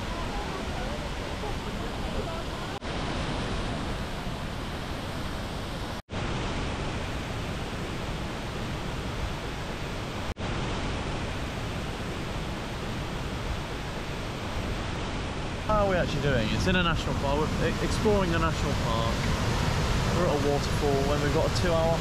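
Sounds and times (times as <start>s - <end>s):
waterfall rushing: 11.4s - 22.0s.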